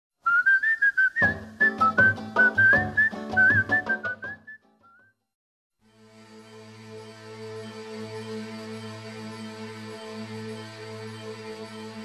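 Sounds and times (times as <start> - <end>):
whistled tune: 0.2 - 5.2.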